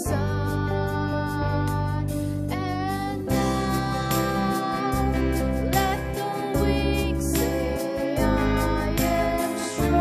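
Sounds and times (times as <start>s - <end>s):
instrumental accompaniment: 0.0s - 10.0s
woman singing into microphone: 0.0s - 10.0s.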